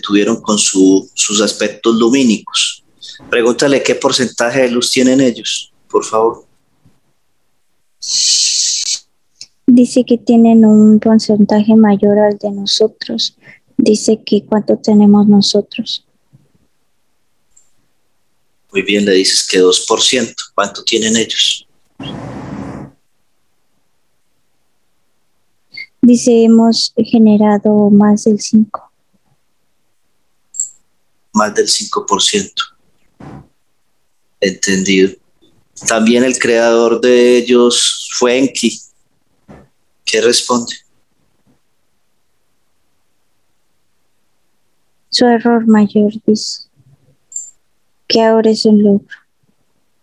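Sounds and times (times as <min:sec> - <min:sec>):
loud high hiss: 0:08.0 - 0:09.0, 0:19.2 - 0:22.9.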